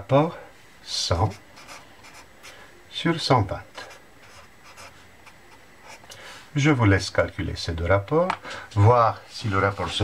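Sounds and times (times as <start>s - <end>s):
pen scratching on paper: 1.2s - 2.6s, 3.8s - 6.0s.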